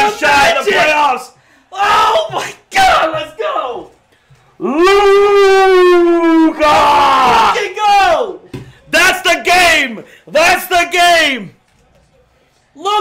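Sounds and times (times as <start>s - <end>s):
men yelling in celebration: 0.0s - 3.9s, 4.6s - 8.4s.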